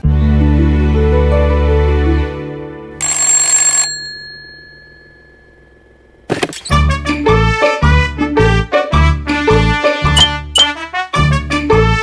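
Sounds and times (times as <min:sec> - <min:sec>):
bell ringing rapidly: 0:03.0 - 0:05.6
bouncy cartoon music: 0:06.7 - 0:12.0.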